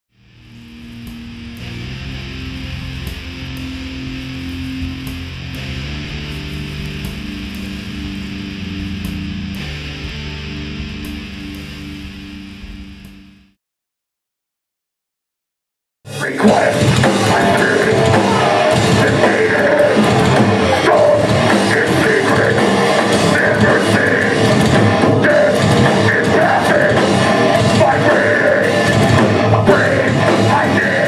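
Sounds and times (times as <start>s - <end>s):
heavy metal music: 0.1s - 13.6s, 16.1s - 31.0s.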